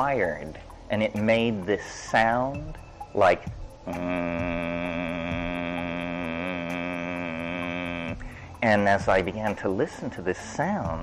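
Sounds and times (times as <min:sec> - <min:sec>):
man humming a droning tone: 0:02.2 - 0:11.0.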